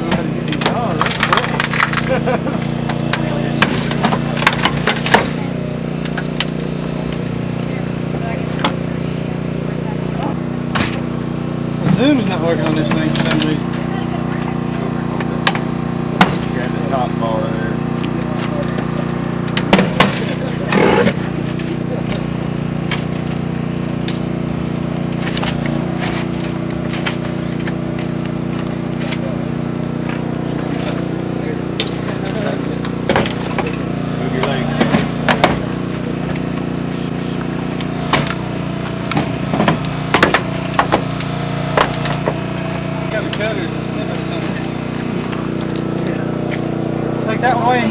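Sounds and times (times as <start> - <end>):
metal cracking and popping: 0.0 - 7.7, 19.4 - 29.4, 30.0 - 46.8
power unit engine running: 0.0 - 47.9.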